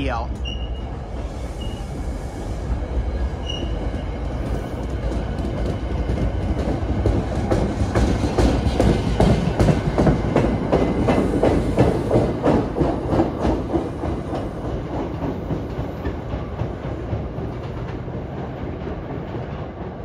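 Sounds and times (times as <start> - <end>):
train wheels clattering over rail joints: 4.3 - 20.0.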